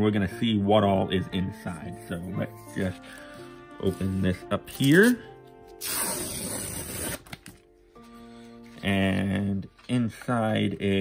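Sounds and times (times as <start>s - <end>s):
cardboard tear strip ripping: 4.7s - 5.2s, 5.8s - 7.6s.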